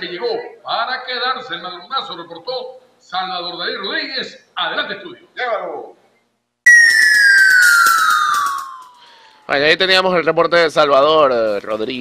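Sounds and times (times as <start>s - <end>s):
descending whistle tone: 6.7s - 9.4s.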